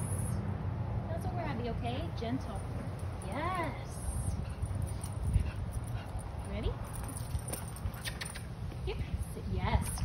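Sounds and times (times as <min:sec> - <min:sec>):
wind rumble on microphone: 0:03.4 - 0:10.0.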